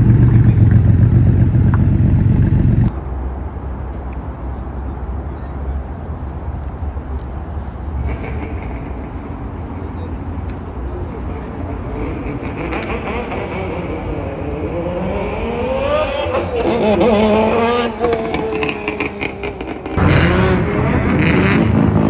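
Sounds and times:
car engine accelerating: 0.0 - 2.9, 12.0 - 22.0.

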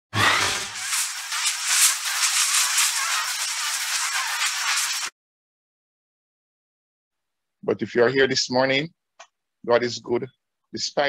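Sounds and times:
high fizzing crackle: 0.4 - 5.1.

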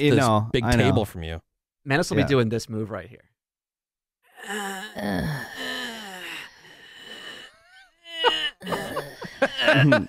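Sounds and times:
person making throaty groans: 4.3 - 10.0
laughter bursts: 8.2 - 10.0.

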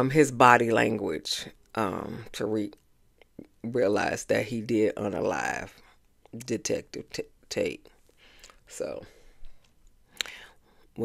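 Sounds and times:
soft breath: 8.0 - 11.0
mouth click: 10.2 - 10.4.

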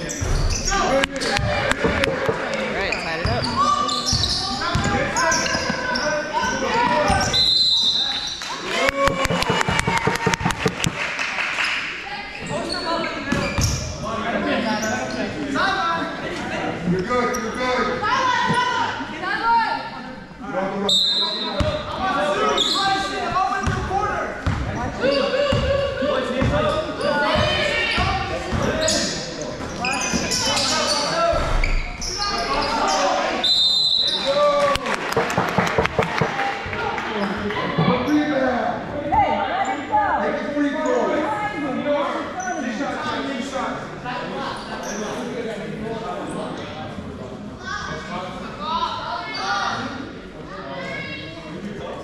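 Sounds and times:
echoing voices in a hall: 0.0 - 52.0
high whistle: 7.3 - 8.4, 33.4 - 34.3
basketball bouncing on gym floor: 9.1 - 11.0.

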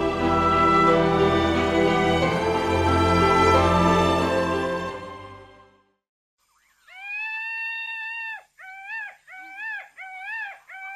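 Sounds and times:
high animal call: 6.6 - 10.9.

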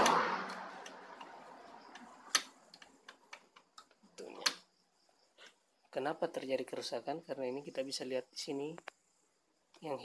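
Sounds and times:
sharp plastic clicks and taps: 0.0 - 4.7.

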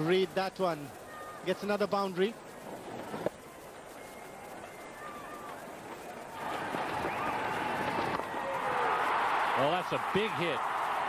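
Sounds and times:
crowd cheering: 4.0 - 11.0.

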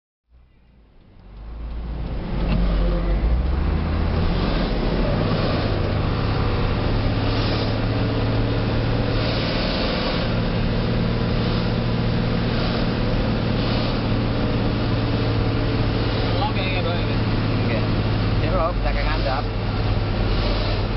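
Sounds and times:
road noise: 0.3 - 20.9
truck diesel engine droning: 0.3 - 20.9.

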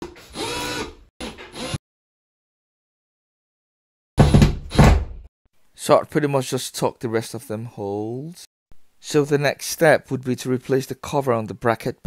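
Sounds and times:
cordless drill driving screws: 0.0 - 1.8.

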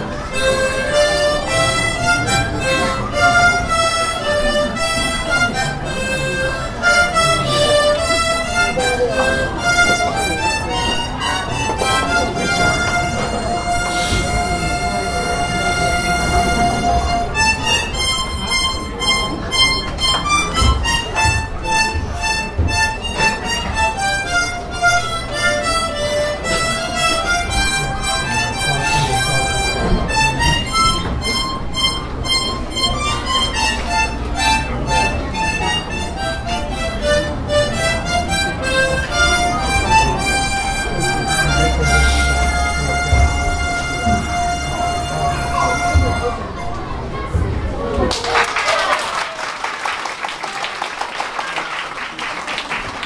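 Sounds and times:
children playing harmonicas: 0.0 - 47.5.

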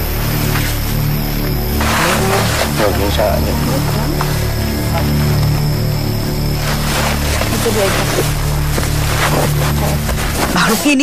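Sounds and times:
steady low drone: 0.0 - 11.0.

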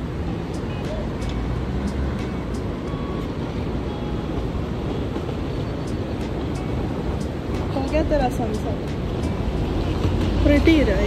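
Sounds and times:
distant road traffic rumble: 0.0 - 11.0.

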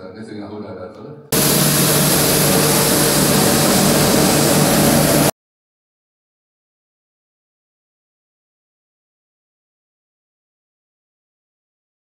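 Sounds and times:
street sweeper truck running: 1.4 - 5.3.

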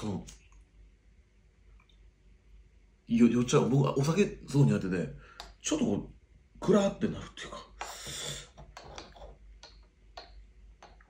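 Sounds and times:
metal spoon scraping glass jar: 8.1 - 9.4.

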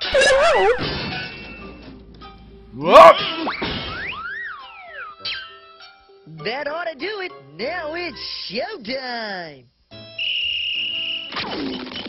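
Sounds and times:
cartoon falling glide: 0.0 - 1.3
cartoon whistle tone: 10.2 - 11.4.

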